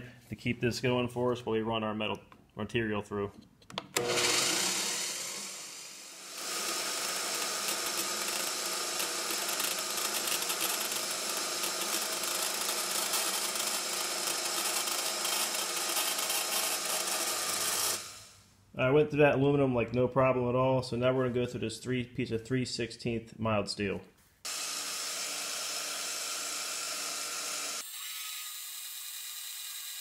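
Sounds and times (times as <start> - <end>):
band saw cutting metal: 4.0 - 18.3, 24.5 - 30.0.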